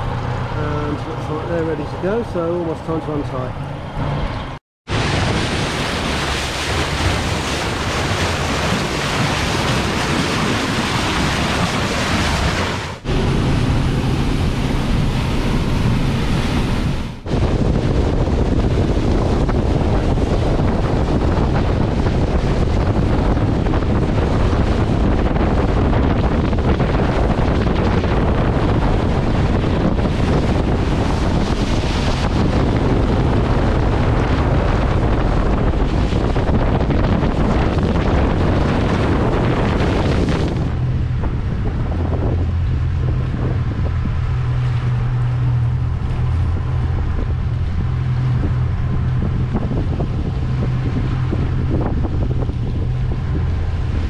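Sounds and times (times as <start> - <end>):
wind buffeting microphone: 0.0 - 54.0
water rushing off boat bow: 4.4 - 54.0.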